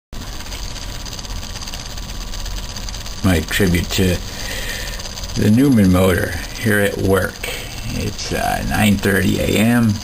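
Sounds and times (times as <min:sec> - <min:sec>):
small motor rattling: 0:00.2 - 0:10.0.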